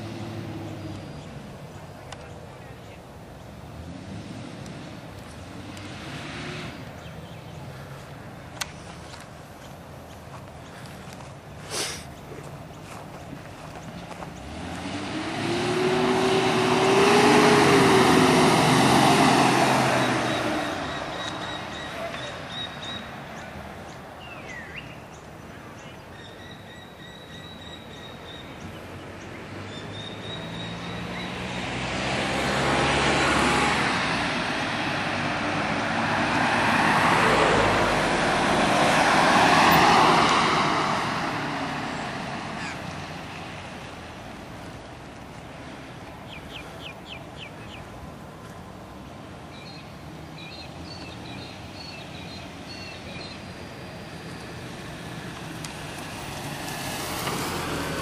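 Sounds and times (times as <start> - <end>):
car driving past: 0.0 - 1.5, 3.7 - 8.1, 14.0 - 24.6, 27.0 - 44.8, 48.9 - 58.0.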